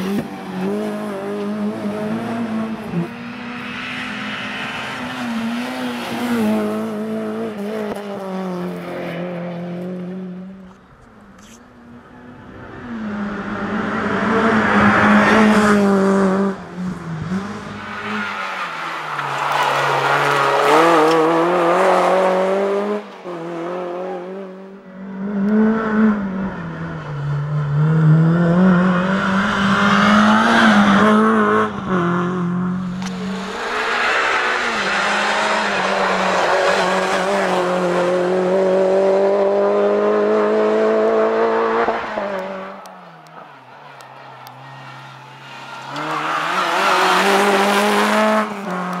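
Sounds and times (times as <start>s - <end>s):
car engine revving: 0.0s - 10.8s, 11.4s - 49.0s.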